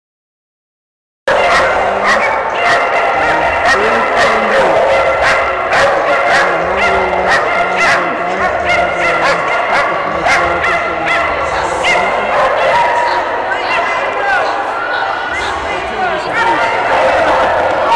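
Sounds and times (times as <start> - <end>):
many dogs barking and yelping: 1.3 - 17.9.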